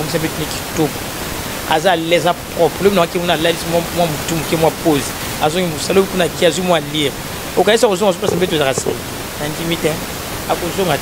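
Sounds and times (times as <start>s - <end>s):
steady background hiss: 0.0s - 11.0s
person speaking: 7.6s - 9.1s.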